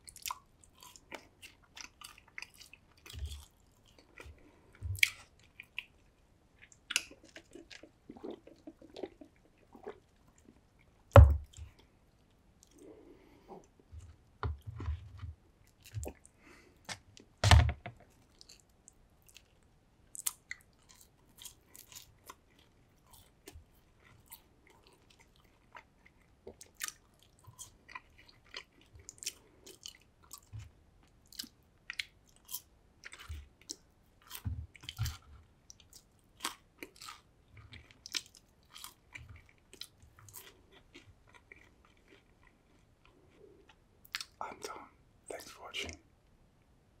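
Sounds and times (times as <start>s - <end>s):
chewing fries: 0.0s - 17.4s, 18.0s - 46.0s.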